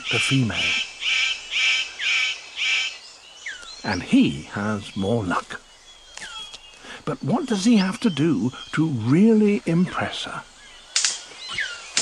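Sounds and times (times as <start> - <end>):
bird calling loudly: 0.0 - 12.0.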